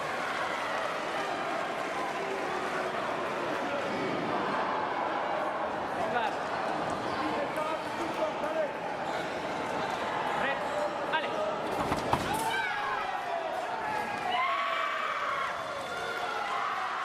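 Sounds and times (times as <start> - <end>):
hubbub of voices: 0.0 - 17.0.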